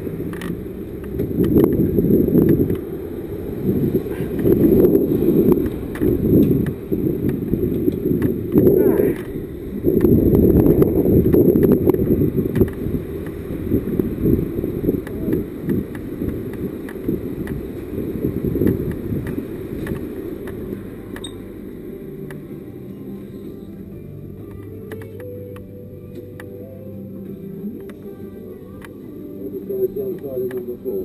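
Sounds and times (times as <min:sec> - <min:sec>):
motorcycle engine at low revs: 0:00.0 - 0:21.4
low rustling rumble: 0:00.0 - 0:31.0.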